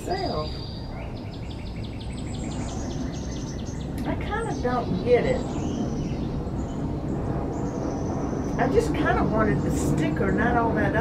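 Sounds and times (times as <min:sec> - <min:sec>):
bird singing repeated notes: 0:00.0 - 0:09.8.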